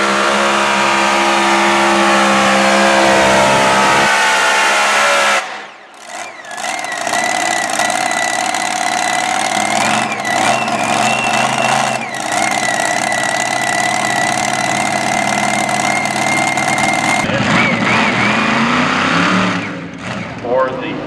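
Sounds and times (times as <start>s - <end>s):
tractor engine revving and idling: 0.0s - 21.0s.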